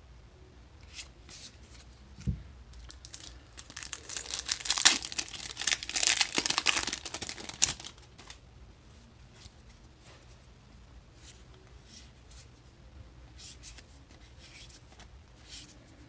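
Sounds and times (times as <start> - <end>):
foil wrapper tearing and crinkling: 2.8 - 8.4.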